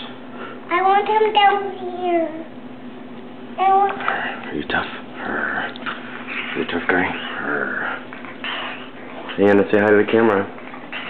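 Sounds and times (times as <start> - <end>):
puppy sniffing and snuffling: 5.4 - 11.0.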